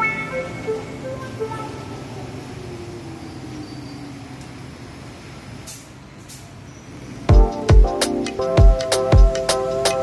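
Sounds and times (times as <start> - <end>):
low background noise: 0.0 - 8.6
short hissing bursts: 4.9 - 7.2.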